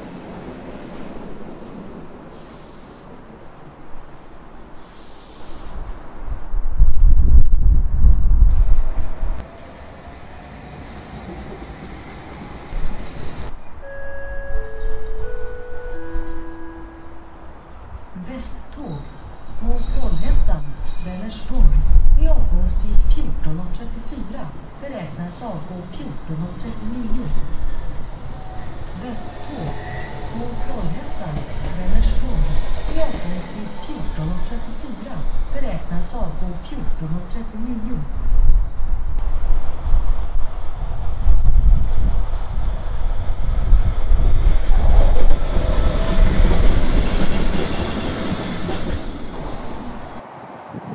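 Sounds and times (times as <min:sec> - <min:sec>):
rail vehicle rumbling: 0:00.0 - 0:50.9
people talking: 0:29.0 - 0:38.1.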